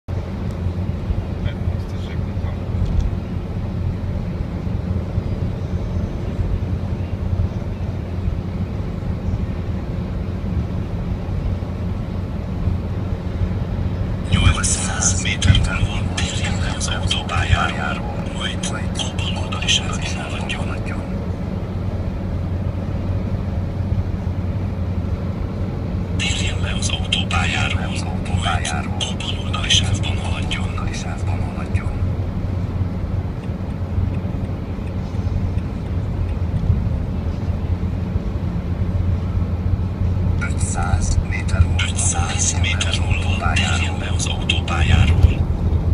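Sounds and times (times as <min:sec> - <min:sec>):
car road and engine drone: 0:00.0 - 0:45.9
person speaking: 0:14.2 - 0:21.2, 0:26.2 - 0:32.1, 0:40.4 - 0:45.4.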